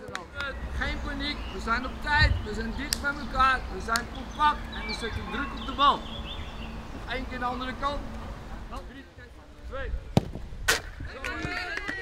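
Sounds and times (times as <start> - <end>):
football being struck: 10.1 - 10.9.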